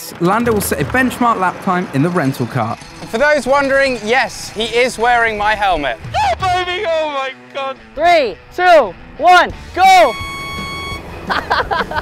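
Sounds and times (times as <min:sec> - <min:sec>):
high electronic beep: 0:09.8 - 0:11.1.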